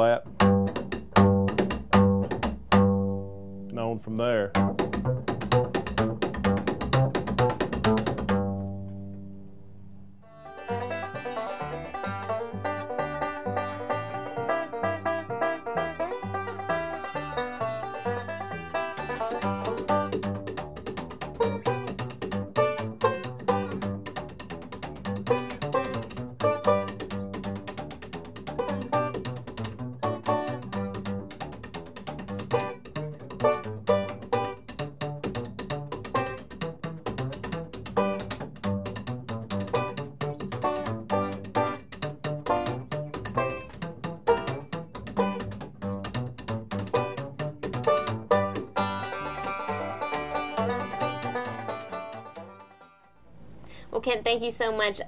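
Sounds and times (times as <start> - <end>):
banjo playing: 0.0 - 9.6, 10.2 - 53.2
slapped upright bass: 0.0 - 53.8.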